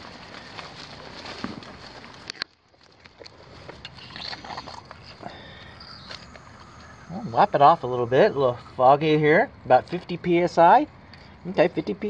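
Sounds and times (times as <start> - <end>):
rustling shrub branches: 0.0 - 8.8
low noise: 3.5 - 11.2.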